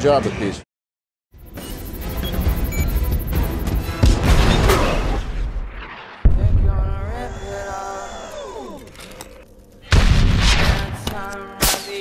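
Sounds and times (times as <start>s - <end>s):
loud explosion: 3.9s - 7.2s, 9.9s - 11.0s.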